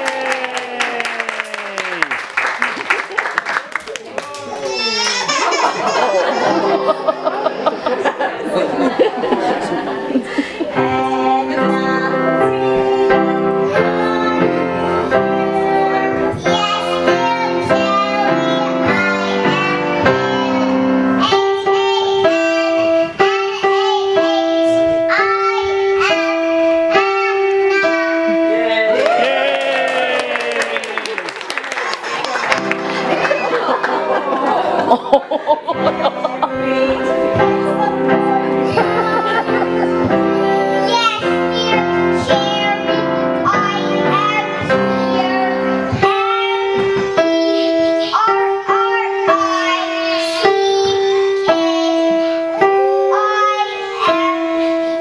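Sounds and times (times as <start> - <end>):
instrumental music with held notes: 4.8 - 29.2, 35.5 - 55.0
girl singing: 8.8 - 29.3, 35.6 - 55.0.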